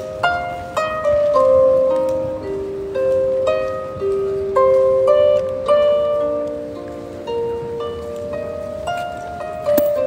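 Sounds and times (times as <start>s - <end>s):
harp plucked melody: 0.0s - 10.0s.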